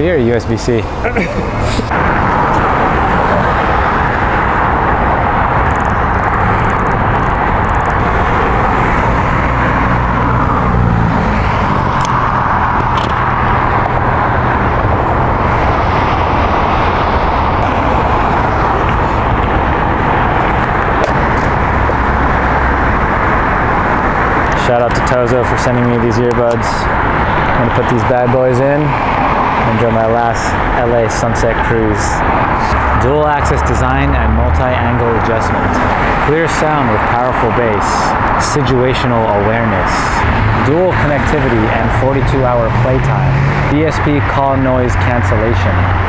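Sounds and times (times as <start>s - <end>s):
road traffic noise: 0.0s - 46.0s.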